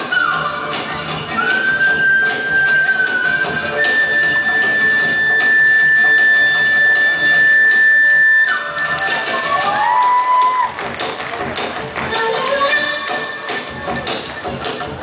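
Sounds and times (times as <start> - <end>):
folk band playing: 11.8 - 14.6.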